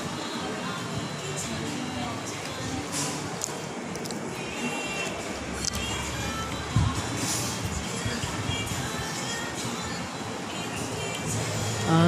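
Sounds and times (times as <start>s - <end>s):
background music: 0.0s - 12.0s
indistinct chatter of diners: 0.0s - 12.0s.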